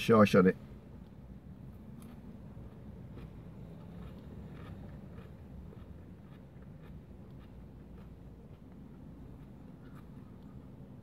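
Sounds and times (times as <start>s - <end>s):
low rumble inside a car: 0.0s - 11.0s
quiet chewing: 1.9s - 11.0s.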